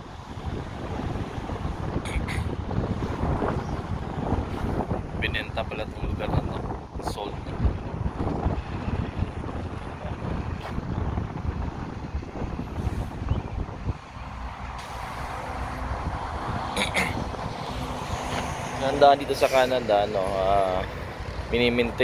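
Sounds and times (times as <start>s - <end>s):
passing vehicle hum: 0.0s - 5.2s, 5.8s - 22.0s
road traffic: 0.0s - 22.0s
wind rumbling on microphone: 0.0s - 22.0s.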